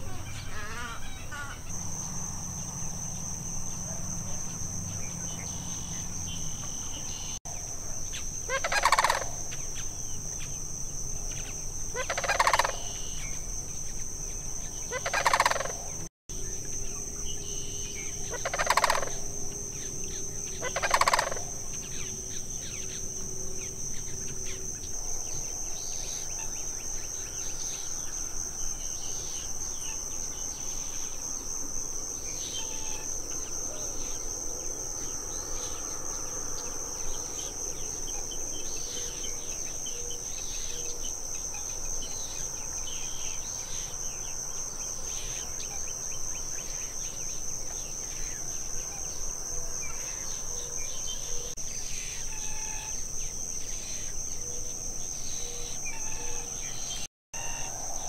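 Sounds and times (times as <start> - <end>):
cranes rattling bugle calls: 0.0 - 1.7, 8.5 - 9.4, 11.9 - 13.1, 14.9 - 16.0, 18.2 - 19.2, 20.5 - 21.7
high-pitched insect chorus: 0.0 - 58.0.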